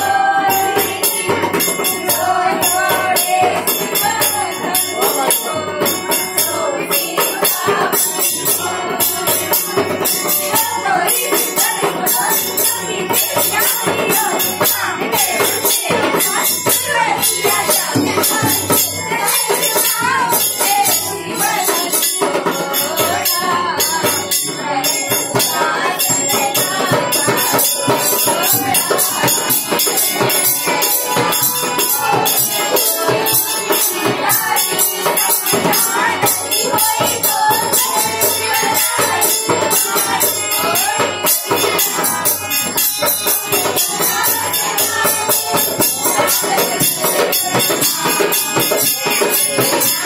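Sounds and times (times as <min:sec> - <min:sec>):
group singing devotional song: 0:00.0 - 0:50.0
hand drum: 0:00.0 - 0:50.0
harmonium: 0:00.0 - 0:50.0
jingling hand percussion: 0:00.0 - 0:50.0.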